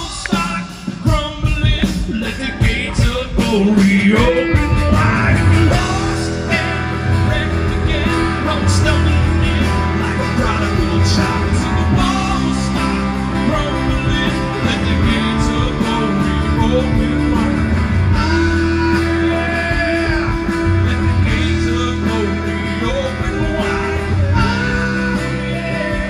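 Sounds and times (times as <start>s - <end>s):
live band with guitars: 0.0s - 26.0s.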